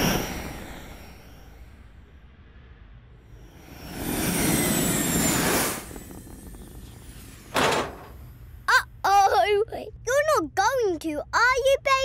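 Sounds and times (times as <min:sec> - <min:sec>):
cartoon rocket whoosh: 0:03.7 - 0:08.3.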